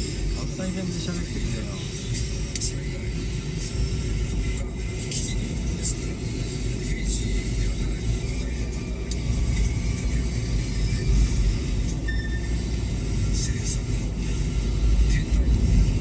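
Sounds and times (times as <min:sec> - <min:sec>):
car engine and tyres rumbling: 0:00.0 - 0:16.0.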